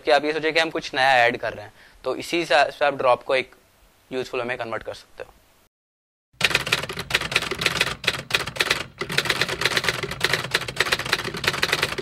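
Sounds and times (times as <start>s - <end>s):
typewriter keys clacking: 6.4s - 12.0s.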